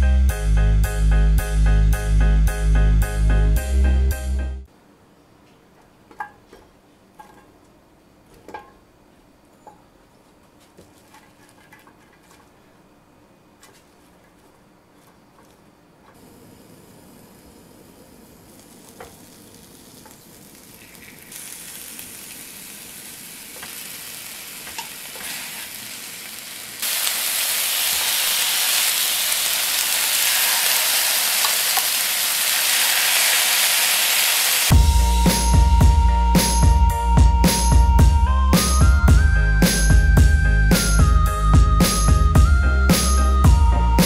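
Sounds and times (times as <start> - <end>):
music: 0.0 - 4.7, 34.7 - 44.0
meat sizzling on grill pan: 16.5 - 34.7.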